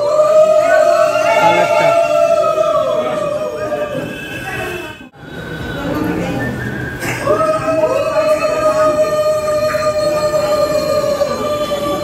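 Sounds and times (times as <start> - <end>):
voices: 0.0 - 12.0
high whistling tone: 2.6 - 7.8.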